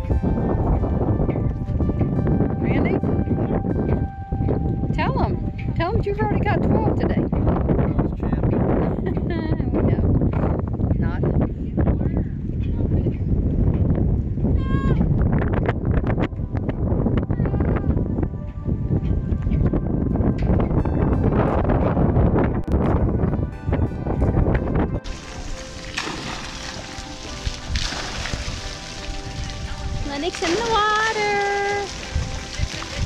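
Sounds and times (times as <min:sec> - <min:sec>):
music playing: 0:00.0 - 0:10.0, 0:16.2 - 0:33.0
wind rumbling on microphone: 0:00.0 - 0:33.0.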